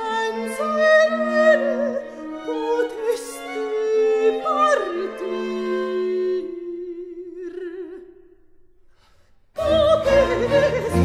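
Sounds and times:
baroque chamber music: 0:00.0 - 0:08.0.

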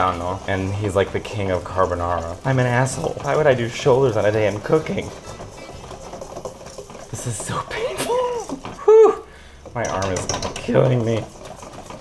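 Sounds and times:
wire whisk scraping metal bowl: 0:00.0 - 0:12.0.

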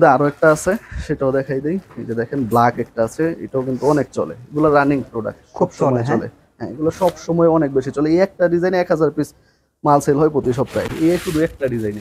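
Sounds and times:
man speaking: 0:00.0 - 0:12.0
fabric rustling: 0:10.4 - 0:12.0.

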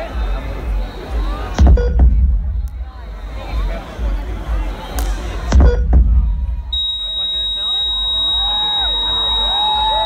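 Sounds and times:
crowd noise: 0:00.0 - 0:10.0
deep booms from speakers: 0:01.5 - 0:03.0, 0:05.4 - 0:06.8.

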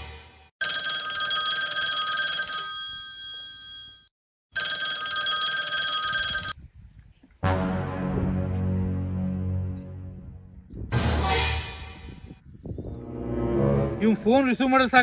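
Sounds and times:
mobile phone ringtone: 0:00.6 - 0:06.6.

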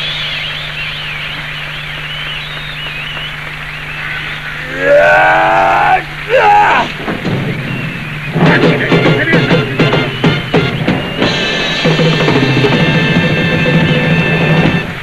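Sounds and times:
voice crying out loudly: 0:04.6 - 0:07.0.

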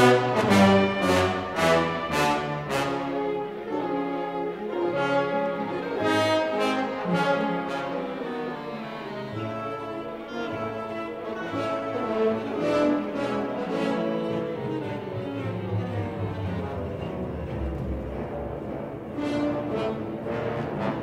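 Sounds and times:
orchestral brass music: 0:00.0 - 0:21.0.

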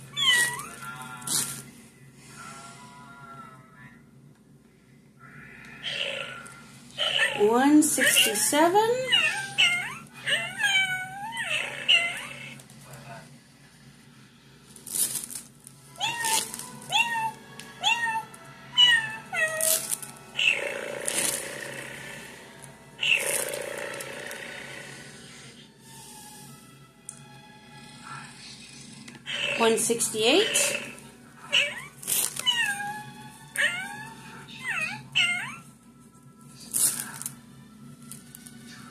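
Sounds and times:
cat meowing: 0:00.1 - 0:00.9, 0:09.1 - 0:12.6, 0:16.0 - 0:19.8, 0:31.4 - 0:35.7.

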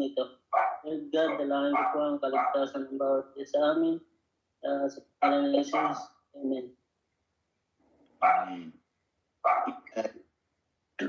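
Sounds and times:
dog barking: 0:00.6 - 0:02.7, 0:05.2 - 0:06.1, 0:08.2 - 0:08.7, 0:09.4 - 0:09.8.

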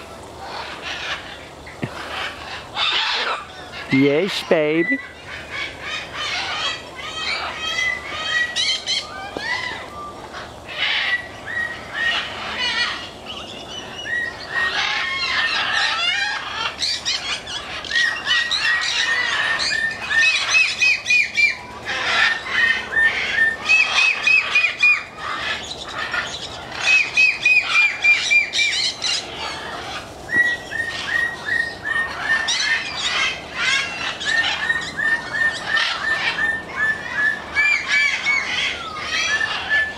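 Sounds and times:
parrots squawking: 0:00.0 - 0:39.9.

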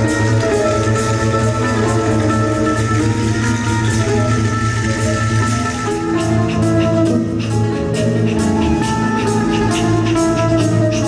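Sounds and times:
bouzouki plucked: 0:00.0 - 0:11.0
live band playing: 0:00.0 - 0:11.0.

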